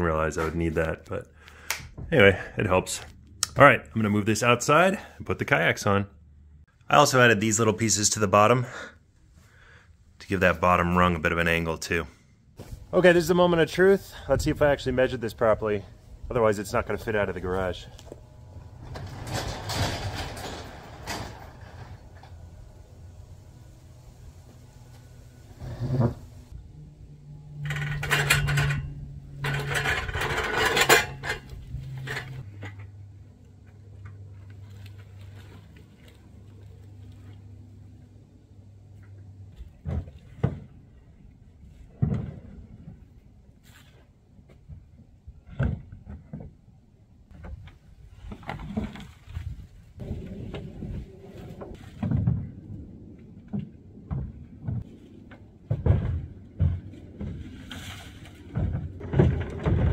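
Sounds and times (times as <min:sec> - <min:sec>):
wooden rack scraping and rattling: 0:17.2 - 0:22.6, 0:25.5 - 0:26.6, 0:27.5 - 0:32.9, 0:47.3 - 0:52.7, 0:53.5 - 0:59.9.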